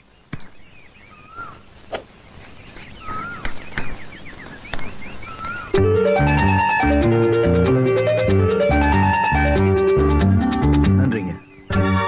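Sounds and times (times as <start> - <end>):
birds chirping: 0.0 - 12.0
instrumental music: 5.7 - 12.0.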